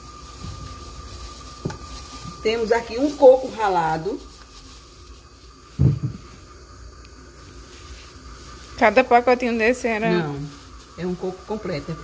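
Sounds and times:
plastic bag rustling: 0.0 - 12.0
short low thump: 5.8 - 6.2.

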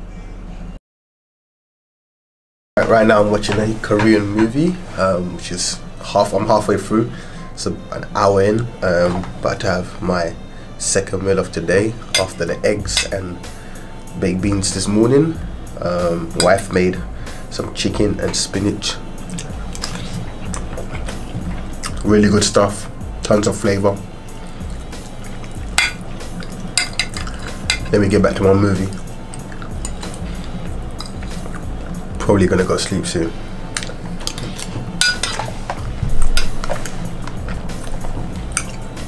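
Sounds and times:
background music: 2.8 - 39.0
person chewing food: 19.2 - 22.1, 24.4 - 28.0, 28.9 - 32.0, 33.7 - 38.9
soft wet mouth sounds: 19.2 - 22.1, 24.3 - 27.9, 28.9 - 32.1
cutlery scraping a plate: 25.3 - 28.0, 33.8 - 37.6.

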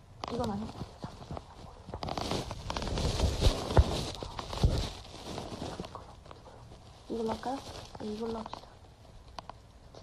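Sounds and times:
rustling: 0.0 - 10.0.

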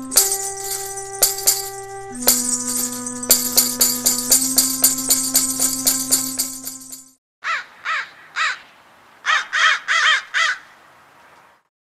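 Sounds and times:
rattle and tambourine music sting: 0.0 - 7.1
crow cawing: 7.4 - 10.8.

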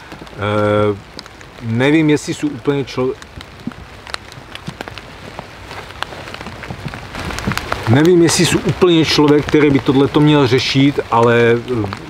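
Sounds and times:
drops pattering on dry leaves: 0.0 - 12.0
faint steady hiss: 0.0 - 12.0.

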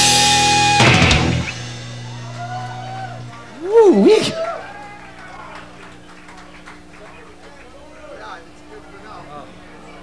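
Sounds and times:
crowd murmur: 1.6 - 10.0.

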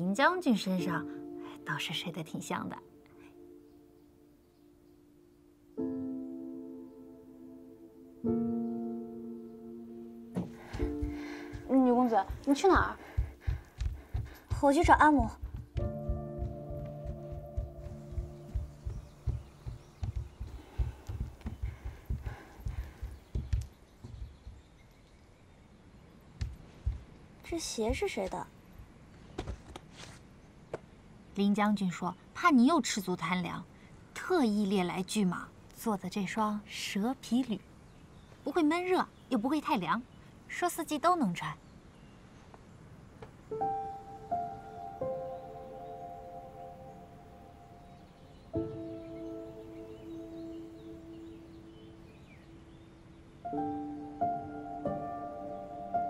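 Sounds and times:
footsteps on wooden floor: 10.3 - 24.6, 26.4 - 27.1.

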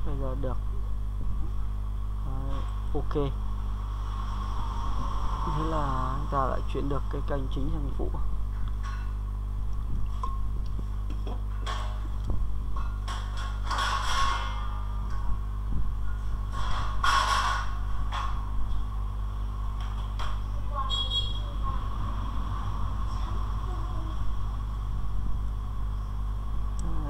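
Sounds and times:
low electrical hum: 0.0 - 27.0.

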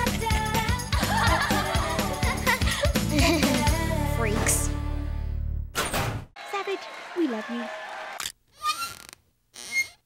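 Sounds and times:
short squeaky sound effects: 8.5 - 10.0.

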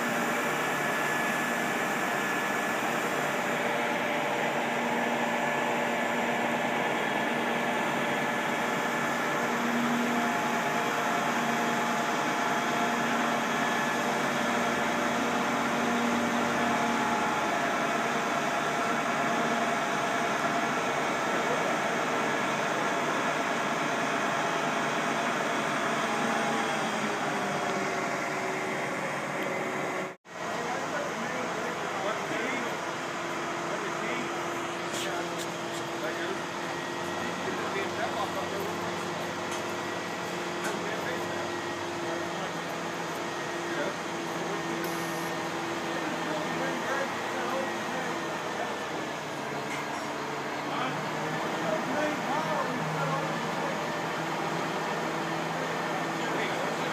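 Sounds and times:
crane engine humming: 0.0 - 56.9.

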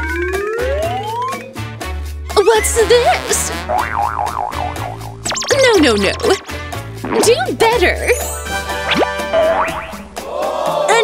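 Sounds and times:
background music: 0.0 - 11.0
woman speaking: 2.4 - 3.5, 5.5 - 6.4, 7.1 - 8.2
cartoon warbling sound effect: 2.5 - 10.1
falling comic sound effect: 5.2 - 6.5.

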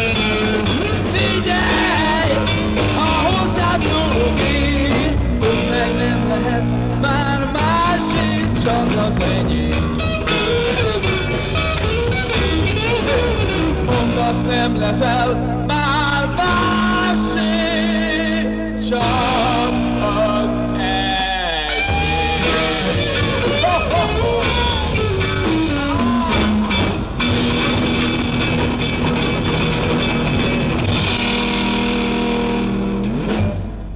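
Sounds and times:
rock band playing: 0.0 - 33.9.

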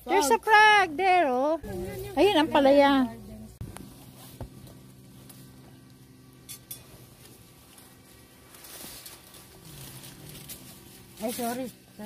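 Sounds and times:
leaves rustling: 6.9 - 12.0.

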